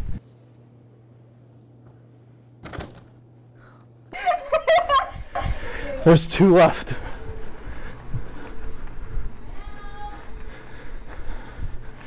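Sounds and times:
soft footsteps: 4.6s - 12.0s.

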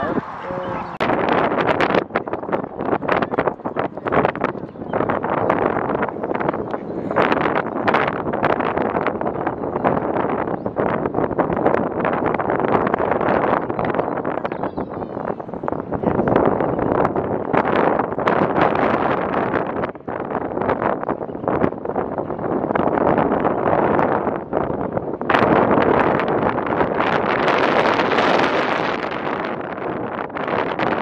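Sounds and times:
wind buffeting microphone: 0.0s - 31.0s.

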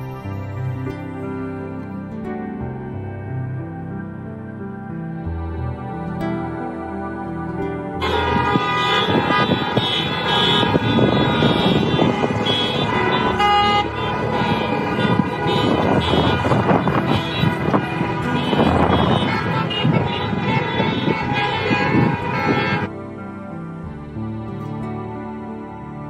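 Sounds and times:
car horns honking: 8.0s - 22.9s
cars driving past: 8.0s - 24.2s.

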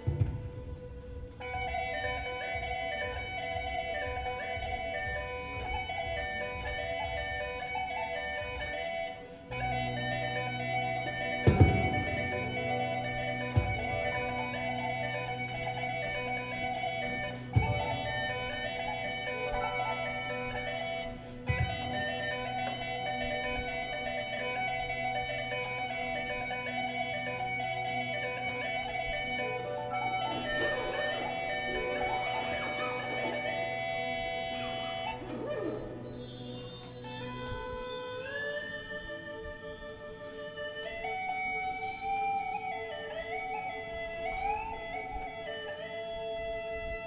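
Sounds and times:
keyboard: 0.0s - 47.0s
wind instrument: 0.0s - 47.0s.

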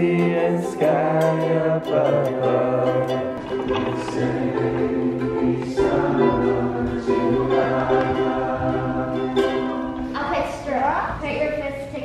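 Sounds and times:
person singing: 0.0s - 9.9s
ukulele playing: 0.0s - 10.2s.

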